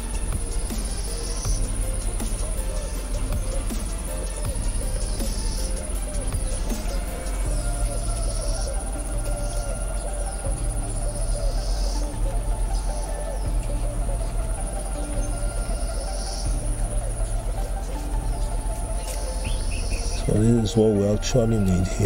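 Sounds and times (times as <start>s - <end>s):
pulsing low hum: 0.0s - 22.0s.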